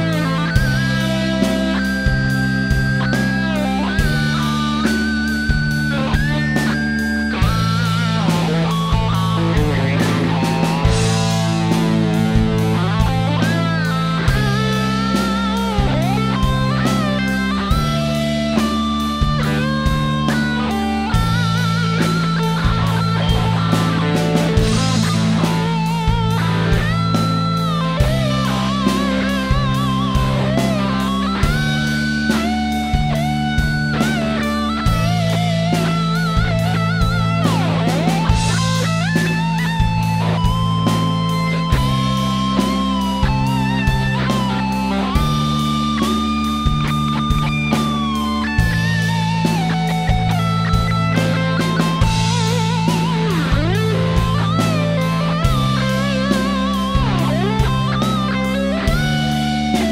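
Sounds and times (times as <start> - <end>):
backing track bass and beat: 0.0 - 59.9
electric guitar lead: 0.0 - 59.9.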